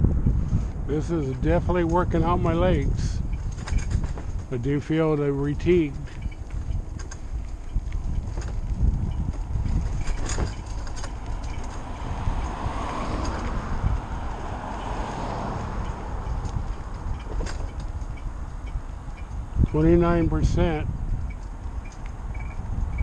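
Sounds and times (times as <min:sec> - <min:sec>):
tyre noise on road: 0:00.0 - 0:23.0
wind rumbling on microphone: 0:00.0 - 0:23.0
small clicks and rattles: 0:03.3 - 0:13.6, 0:15.8 - 0:19.8.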